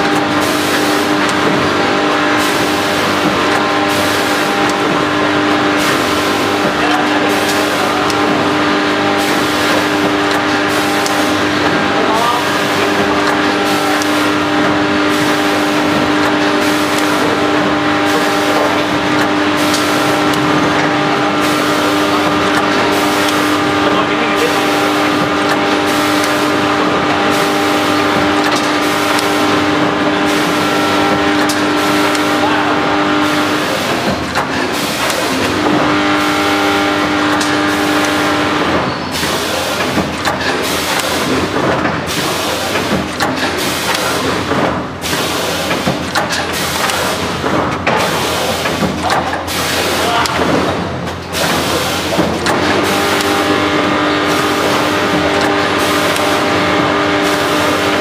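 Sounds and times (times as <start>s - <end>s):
machine stroke: 0.0s - 58.0s
packing machine hum: 0.0s - 58.0s.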